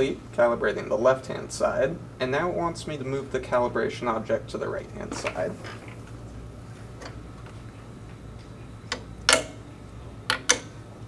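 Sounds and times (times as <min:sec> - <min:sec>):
low steady hum: 0:00.0 - 0:11.0
plates clicking onto magnetic mounts: 0:08.4 - 0:09.6, 0:10.2 - 0:10.8.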